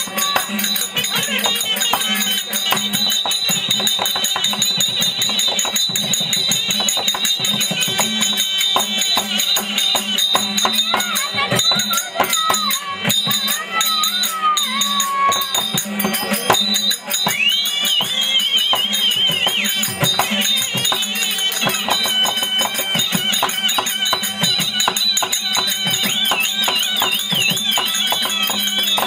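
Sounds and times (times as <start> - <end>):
harmonium drone: 0.0 - 29.0
jingling cymbals and bells: 0.0 - 29.0.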